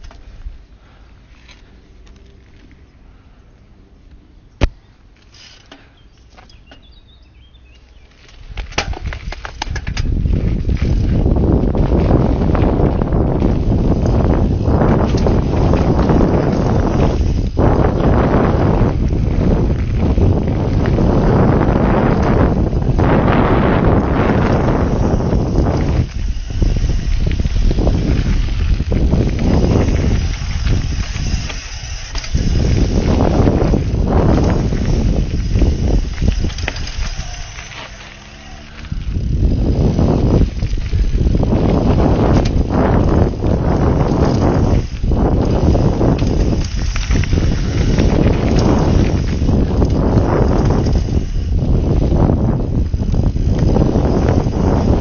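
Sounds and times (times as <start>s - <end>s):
bike tyres rolling on dirt trail: 0.0s - 55.0s
wind buffeting microphone: 6.6s - 55.0s.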